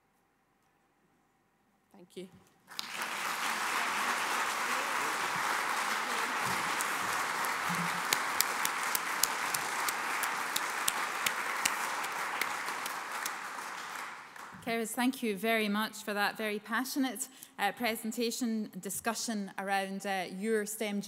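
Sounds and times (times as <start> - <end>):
audience applauding: 2.7 - 14.6.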